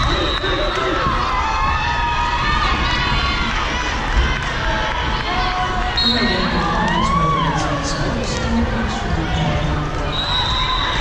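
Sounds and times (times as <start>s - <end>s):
spectators cheering and shouting: 0.0s - 11.0s.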